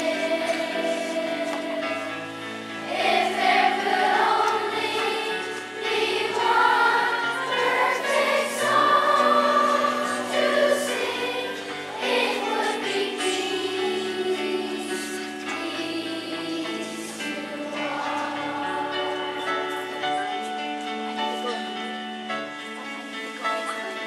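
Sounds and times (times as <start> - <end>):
children's choir singing: 0.0 - 21.5.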